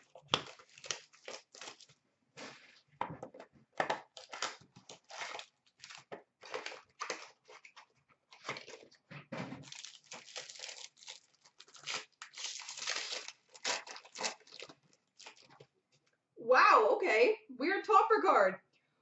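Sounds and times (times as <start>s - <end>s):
wrapper tearing and crinkling: 0.0s - 2.0s, 4.0s - 9.0s, 9.6s - 15.6s.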